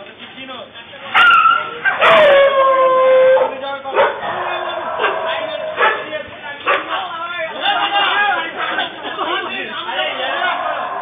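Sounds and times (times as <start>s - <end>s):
dog howling: 1.2s - 6.9s, 10.2s - 11.0s.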